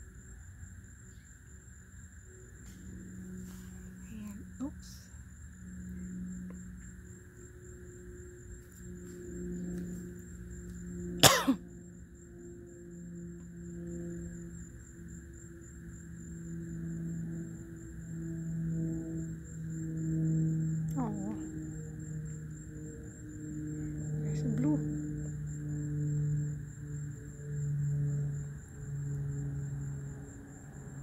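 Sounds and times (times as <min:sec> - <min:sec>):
low droning music: 0:00.0 - 0:31.0.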